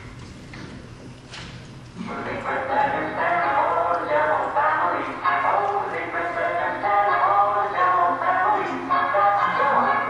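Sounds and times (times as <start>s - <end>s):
high-pitched wordless vocals: 2.0s - 10.0s.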